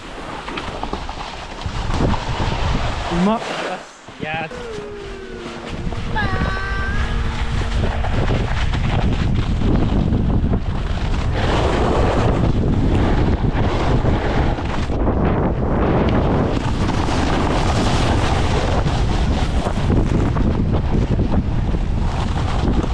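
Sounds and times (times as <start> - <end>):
skis scraping on snow: 0.0 - 14.9, 15.8 - 21.0, 22.0 - 22.9
wind rushing over microphone: 1.6 - 22.9.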